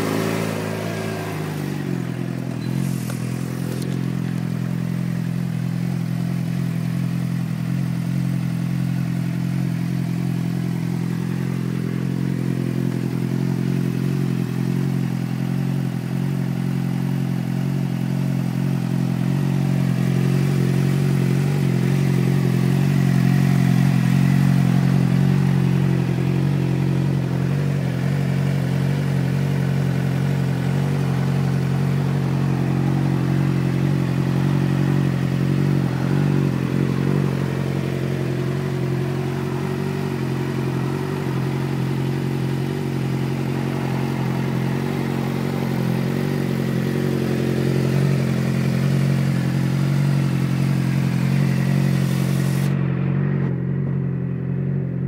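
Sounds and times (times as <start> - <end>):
motorcycle engine idling: 0.0 - 55.0.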